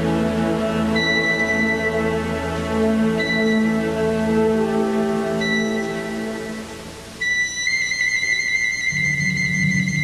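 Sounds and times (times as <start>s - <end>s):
low orchestra notes: 0.0s - 7.4s
piccolo high note: 0.9s - 10.0s.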